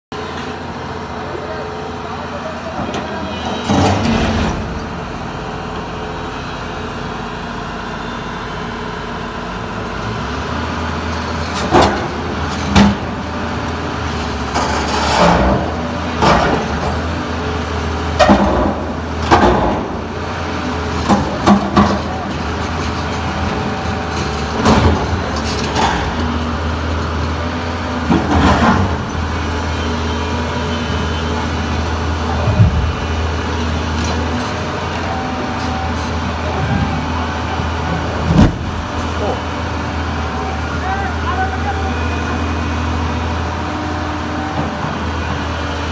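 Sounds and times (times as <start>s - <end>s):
excavator diesel engines running: 0.1s - 45.9s.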